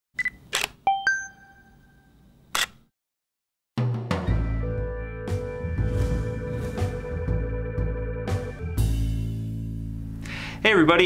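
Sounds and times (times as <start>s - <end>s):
camera shutter click: 0.5s - 0.8s, 2.5s - 2.8s
music: 3.8s - 11.0s.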